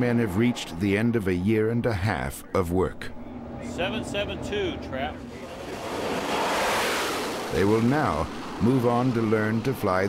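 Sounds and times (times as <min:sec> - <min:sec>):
jet engine roar: 0:02.9 - 0:09.7.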